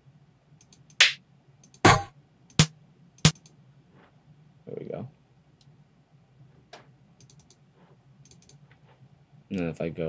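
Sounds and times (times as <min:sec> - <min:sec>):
electronic snare drum hits: 0:01.0 - 0:01.2, 0:01.8 - 0:03.4
faint mouse clicks: 0:07.2 - 0:07.6, 0:08.2 - 0:08.7.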